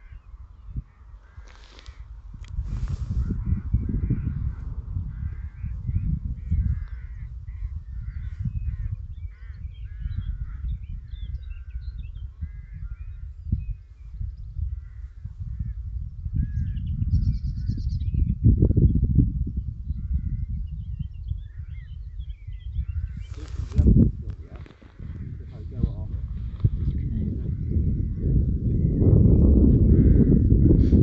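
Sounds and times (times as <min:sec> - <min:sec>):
birds calling harshly: 0:00.0 - 0:18.3, 0:19.9 - 0:30.5
wind buffeting microphone: 0:00.0 - 0:31.0.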